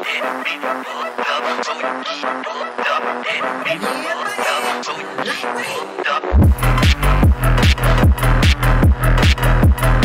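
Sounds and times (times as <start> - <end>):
sped-up house music lead: 0.1 - 10.0.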